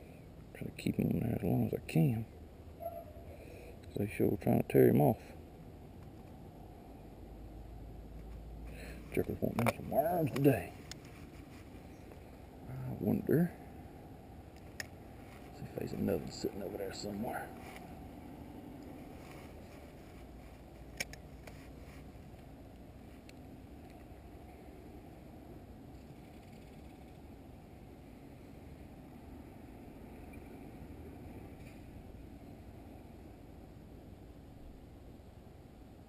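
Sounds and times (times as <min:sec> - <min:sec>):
faint outdoor background noise: 0:00.0 - 0:36.0.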